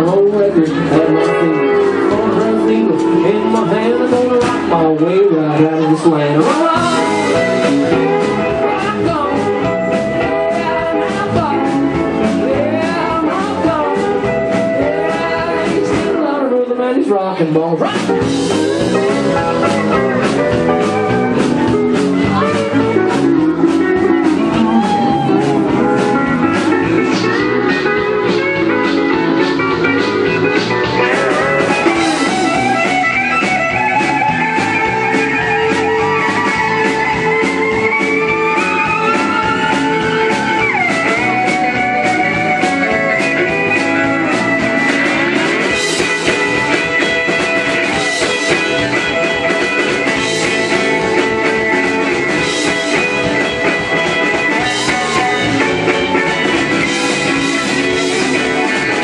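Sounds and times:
steady drum beat: 0:00.0 - 0:16.2, 0:17.9 - 0:59.0
electric guitar: 0:00.0 - 0:59.0.

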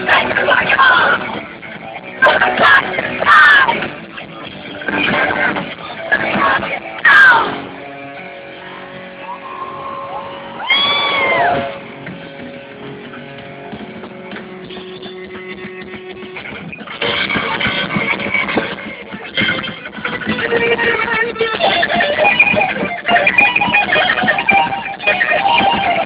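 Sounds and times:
electric guitar playing metal: 0:00.0 - 0:26.0.

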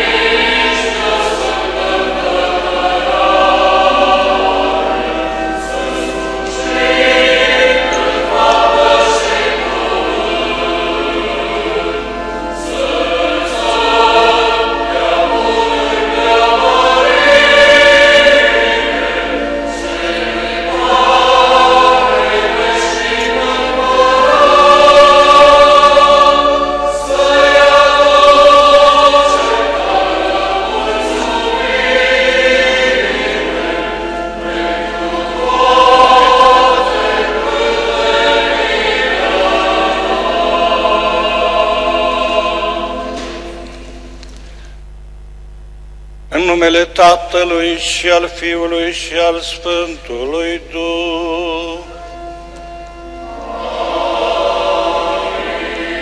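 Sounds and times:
choir singing a hymn: 0:00.0 - 0:44.0, 0:47.5 - 0:56.0.

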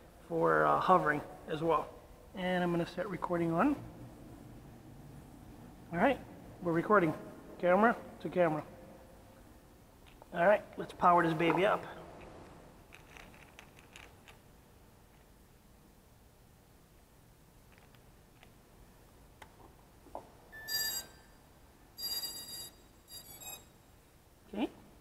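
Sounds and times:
electronic startup beeps: 0:20.6 - 0:21.3, 0:22.0 - 0:23.7.

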